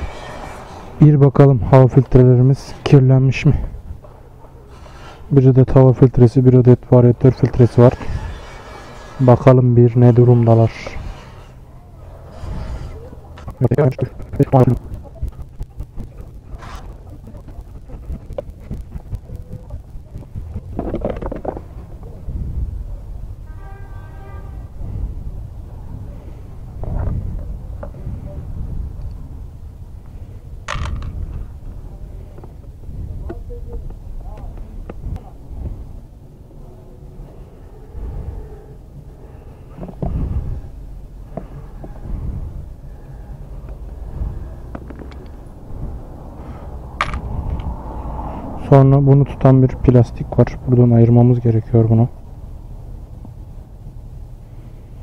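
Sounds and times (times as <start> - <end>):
steady low rumble: 0.0 - 23.5, 24.5 - 55.0.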